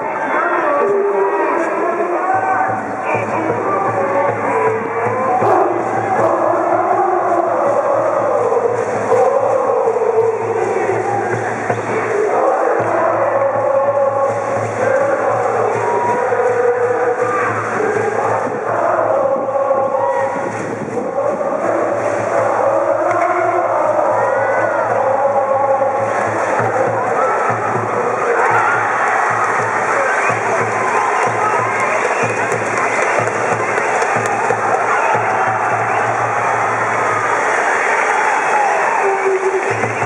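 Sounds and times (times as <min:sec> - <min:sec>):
crowd singing and shouting: 0:00.0 - 0:40.0.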